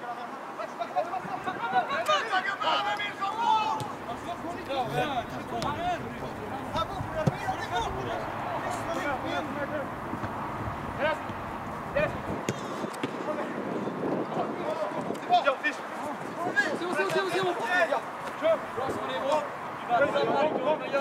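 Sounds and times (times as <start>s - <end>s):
voices calling out and talking: 0.6s - 21.0s.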